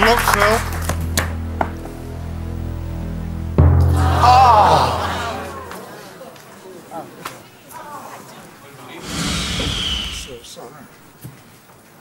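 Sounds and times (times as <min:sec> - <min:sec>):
quiet voices: 0:04.2 - 0:10.9
loud rushing burst with falling tone: 0:09.0 - 0:10.5.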